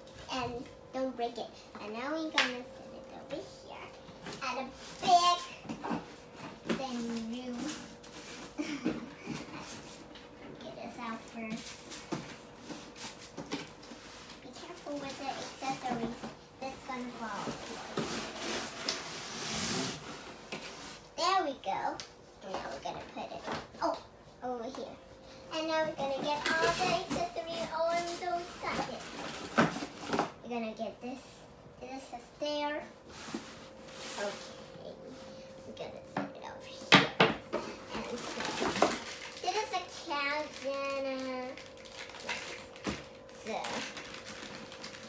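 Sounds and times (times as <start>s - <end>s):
cardboard rustling: 25.8s - 30.3s.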